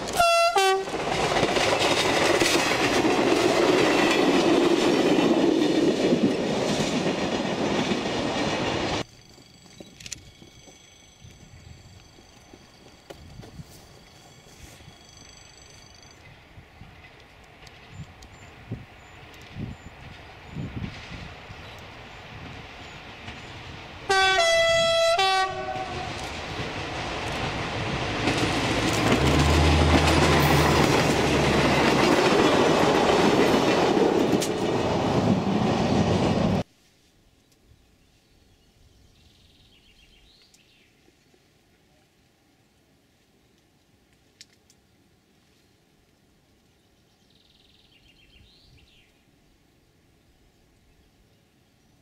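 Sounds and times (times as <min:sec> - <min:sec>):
railcar engine and wheels: 0:00.0 - 0:52.0
train horn blast: 0:00.1 - 0:01.0, 0:24.1 - 0:26.3.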